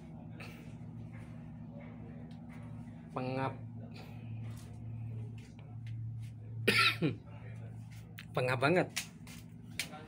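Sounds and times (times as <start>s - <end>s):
engine room machinery hum: 0.0s - 10.0s.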